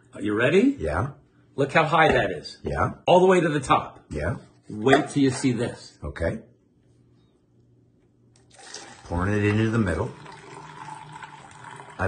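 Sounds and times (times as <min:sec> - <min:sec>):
coffee pouring into paper cup: 0:08.4 - 0:12.0.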